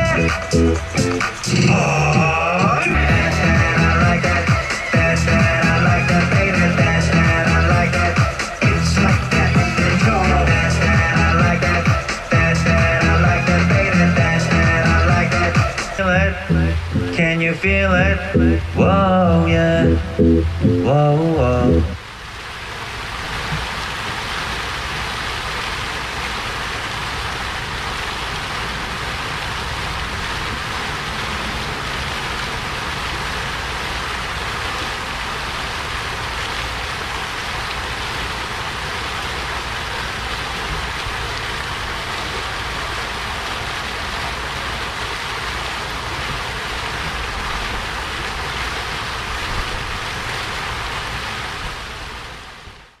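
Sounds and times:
fountain water splashing: 0:00.0 - 0:53.0.

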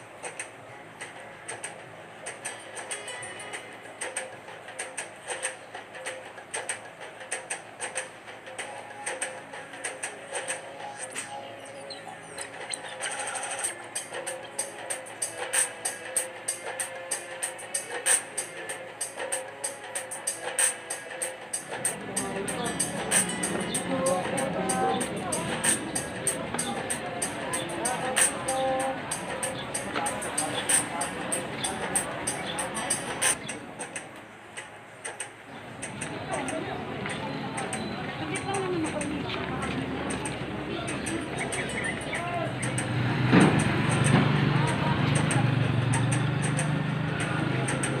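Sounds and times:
intro music: 0:01.1 - 0:34.1, 0:35.7 - 0:48.0
mechanical clicking and ticking: 0:16.8 - 0:48.0.

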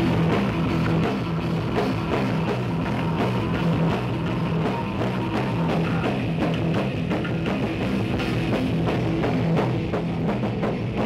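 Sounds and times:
drum kit steady beat: 0:00.0 - 0:11.0
electric bass guitar: 0:00.0 - 0:11.0
live heavy rock band: 0:00.0 - 0:11.0.

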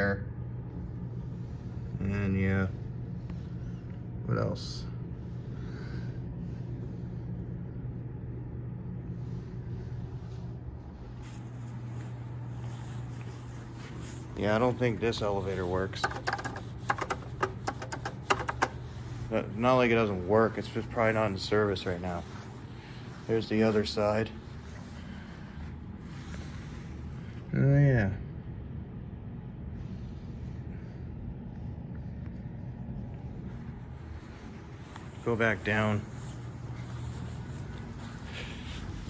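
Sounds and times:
low background rumble: 0:00.0 - 0:39.0
low steady hum: 0:00.0 - 0:39.0
elevator buttons clicking: 0:16.0 - 0:18.8.

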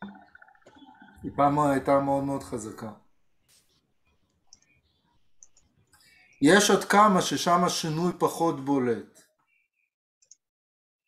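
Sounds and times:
faint clicks: 0:04.2 - 0:06.4.

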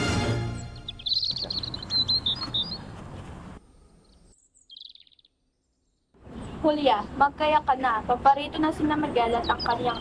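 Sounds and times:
small birds chirping: 0:00.5 - 0:10.0.

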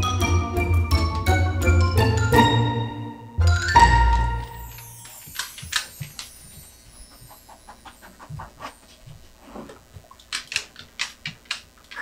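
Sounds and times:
dog panting rapidly: 0:07.0 - 0:09.2.

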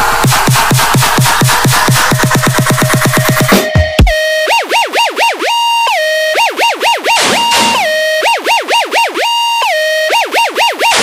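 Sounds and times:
electronic siren-style wail: 0:03.5 - 0:11.0.

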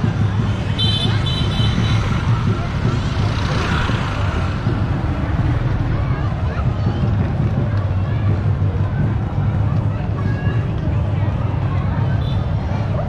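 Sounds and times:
crowd voices: 0:00.0 - 0:13.0
low street rumble: 0:00.0 - 0:13.0.

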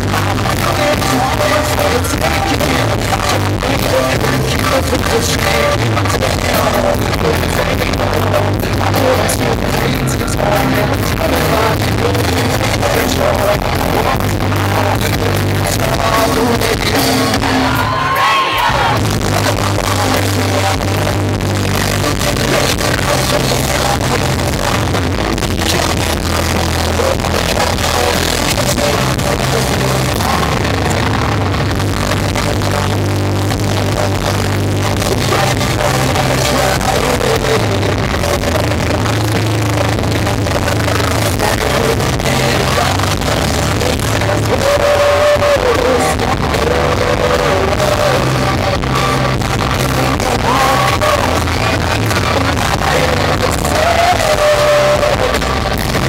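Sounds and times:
live rock band: 0:00.0 - 0:56.0
person singing lead vocal: 0:00.0 - 0:56.0.

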